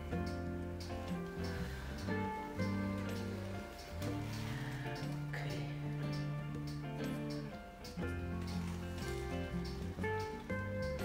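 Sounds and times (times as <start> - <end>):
background music sustained notes: 0.0 - 11.0.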